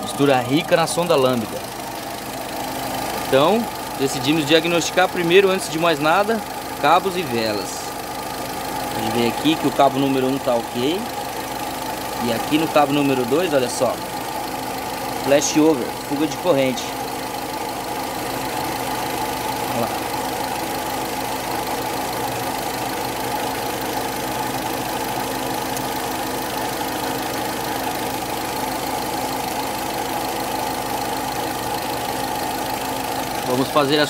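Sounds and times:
car engine idling with misfire: 0.0 - 34.0.

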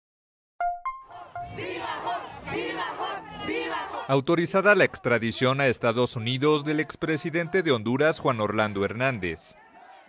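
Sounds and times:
crowd shouting: 1.0 - 10.0.

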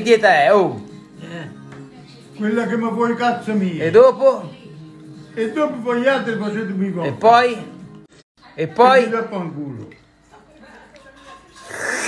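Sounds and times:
man slurping pasta: 11.6 - 12.0.

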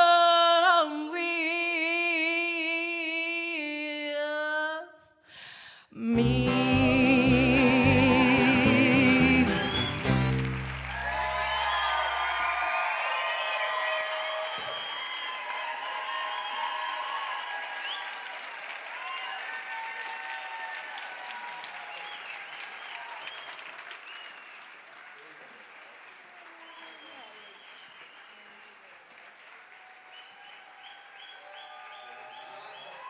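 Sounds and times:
audience applauding and calling out: 6.2 - 33.0.

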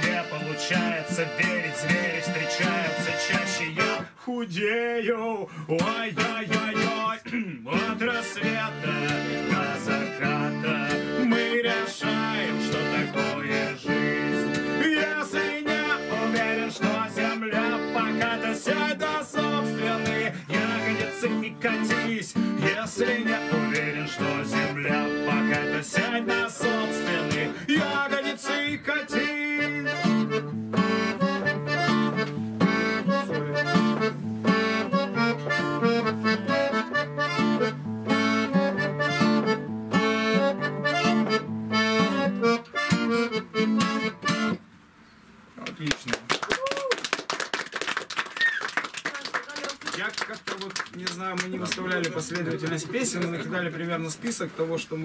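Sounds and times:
acoustic guitar song: 0.0 - 45.6
small group clapping: 45.6 - 53.6.

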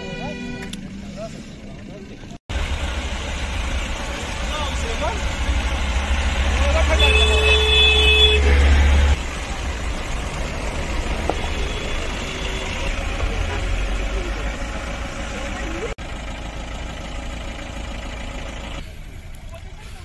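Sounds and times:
vehicles rumbling on road: 0.0 - 20.0.

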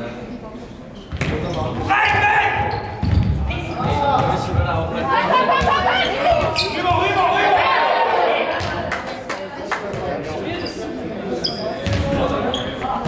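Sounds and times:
voices in echoing hall: 0.0 - 13.0.

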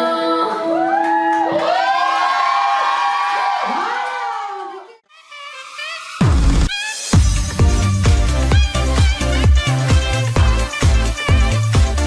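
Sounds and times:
audience cheering: 0.8 - 5.0.

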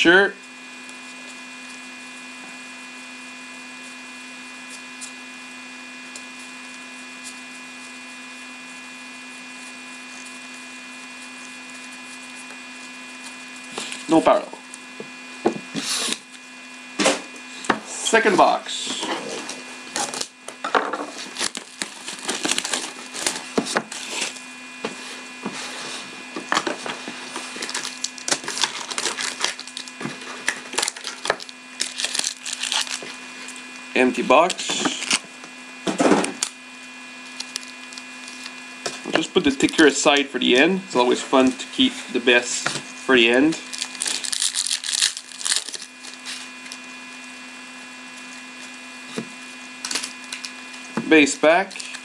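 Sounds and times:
steady low hum: 0.0 - 52.0
card pack wrapper tearing and rustling: 19.9 - 20.4, 21.1 - 24.5, 26.5 - 33.6, 34.4 - 35.3, 37.2 - 40.0, 43.6 - 46.8, 49.8 - 50.8, 51.5 - 52.0.

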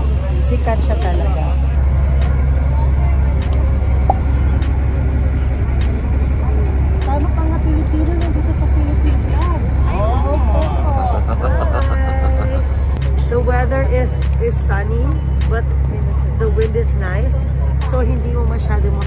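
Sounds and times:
ferry engine low rumble: 0.0 - 19.0
people talking: 0.0 - 19.0.

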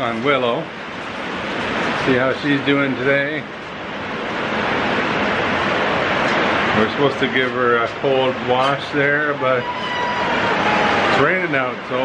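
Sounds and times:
heavy rain pouring: 0.0 - 12.0.

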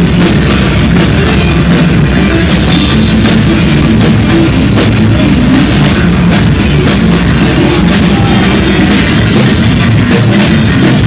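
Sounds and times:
drum kit: 0.0 - 11.0
electric guitar: 0.0 - 11.0.

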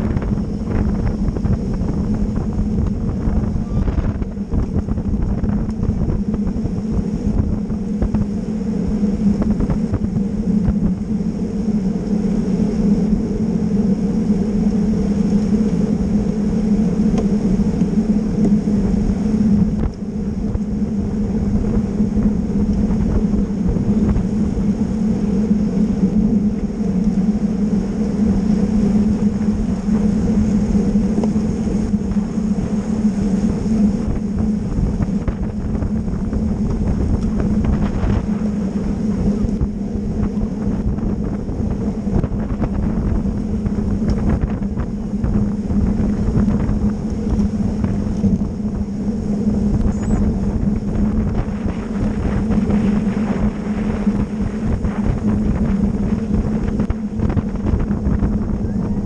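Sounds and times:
wind rush on microphone: 0.0 - 59.0.

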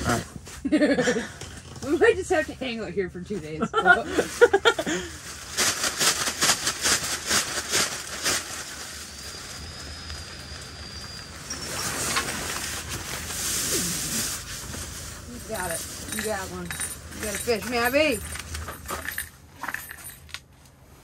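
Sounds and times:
sleeping bags rustling: 0.0 - 20.2.

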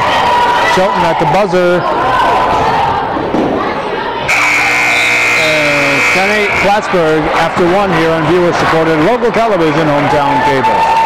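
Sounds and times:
scoreboard horn buzz: 4.3 - 7.1.

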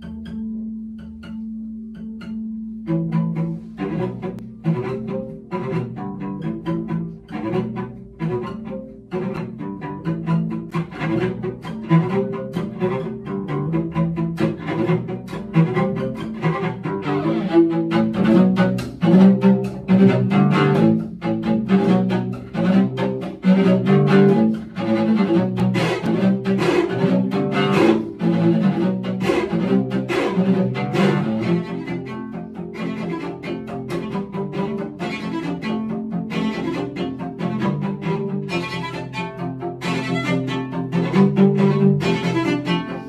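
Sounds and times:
cello duet: 0.0 - 43.0.

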